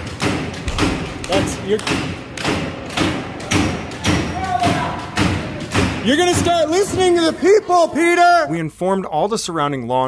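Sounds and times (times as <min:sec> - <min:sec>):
loud repeated thumps: 0:00.0 - 0:07.4
person shouting: 0:04.3 - 0:05.1.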